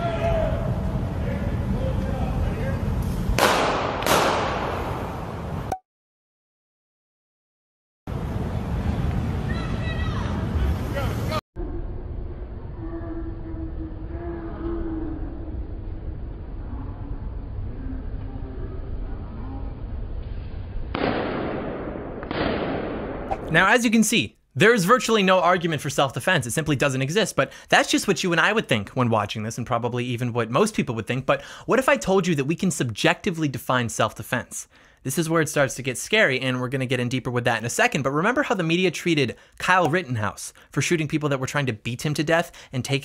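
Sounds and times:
gunshots with echo: 0:03.4 - 0:05.2, 0:20.9 - 0:23.4
sharp bang: 0:20.9 - 0:23.5.

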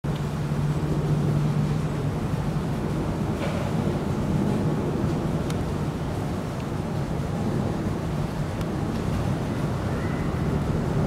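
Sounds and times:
constant low hum: 0:00.0 - 0:11.0
low rumble: 0:00.0 - 0:11.0.

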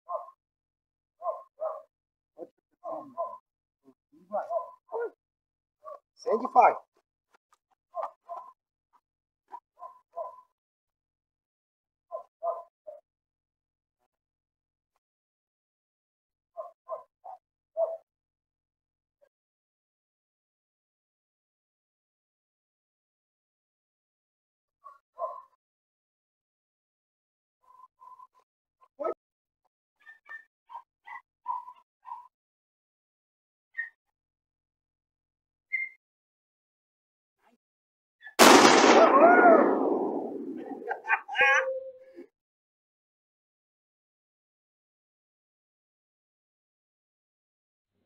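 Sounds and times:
dog barking: 0:00.1 - 0:00.4, 0:01.2 - 0:01.9, 0:02.8 - 0:03.5, 0:04.3 - 0:05.2, 0:05.8 - 0:06.0, 0:07.9 - 0:08.6, 0:09.8 - 0:10.5, 0:12.1 - 0:13.0, 0:16.6 - 0:18.1, 0:24.9 - 0:25.6, 0:30.0 - 0:32.3, 0:40.6 - 0:41.8.

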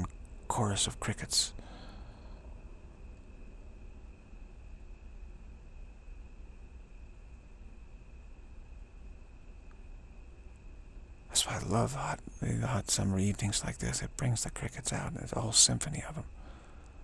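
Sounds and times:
crickets trilling: 0:00.0 - 0:17.0.

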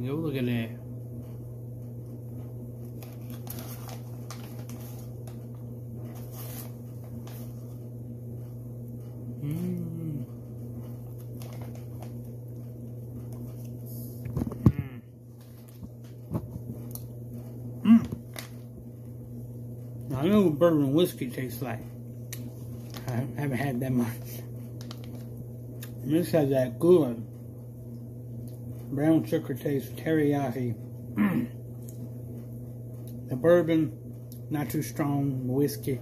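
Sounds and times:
clothes dryer humming: 0:00.0 - 0:36.0.

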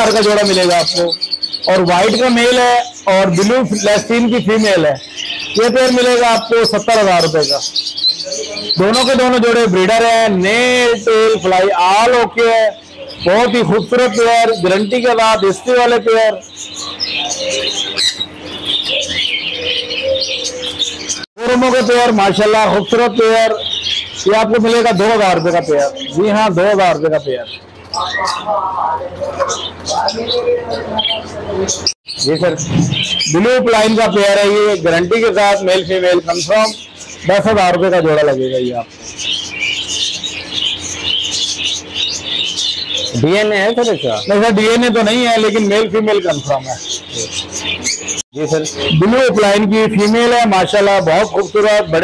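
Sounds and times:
caged birds chirping: 0:00.0 - 0:52.0.

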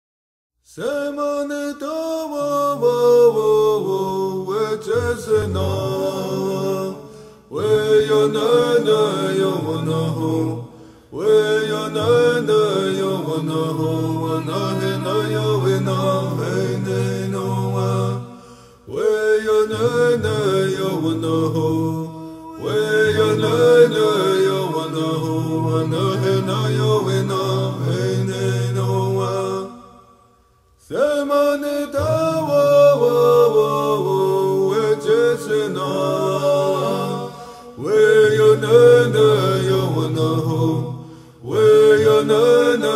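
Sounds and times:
man singing chant-like phrases: 0:00.7 - 0:18.3, 0:18.9 - 0:29.8, 0:30.9 - 0:42.9.

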